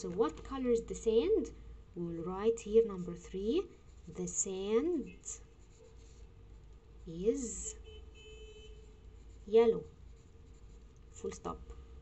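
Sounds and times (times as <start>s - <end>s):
pencil scratching on paper: 3.4s - 6.3s, 8.9s - 11.4s.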